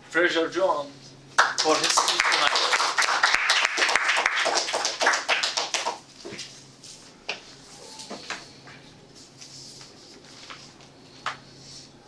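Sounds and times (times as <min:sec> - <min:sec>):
audience clapping: 0:01.4 - 0:06.0.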